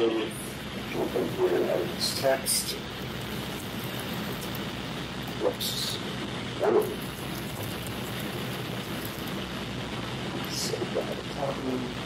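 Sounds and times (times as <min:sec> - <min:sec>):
room noise: 0:00.0 - 0:12.0.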